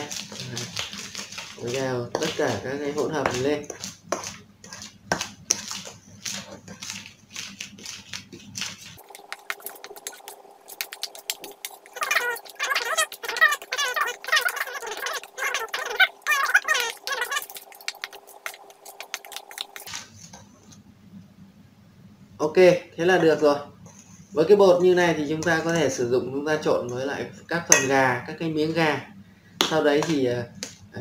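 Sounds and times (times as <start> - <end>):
warbling chirps: 9.0 - 19.9
metal spoon scraping steel bowl: 27.7 - 28.0.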